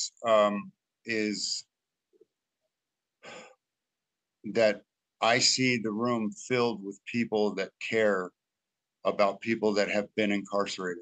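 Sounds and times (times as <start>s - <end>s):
breathy sigh: 3.2s - 3.6s.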